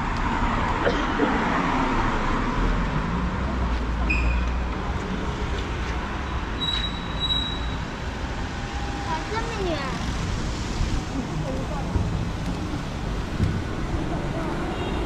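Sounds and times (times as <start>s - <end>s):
road noise: 0.0s - 15.0s.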